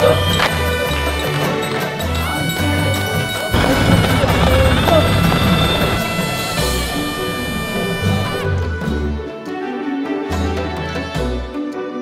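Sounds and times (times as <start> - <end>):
wavering wind instrument melody: 0.0 - 9.4
dense drumming: 3.5 - 8.6.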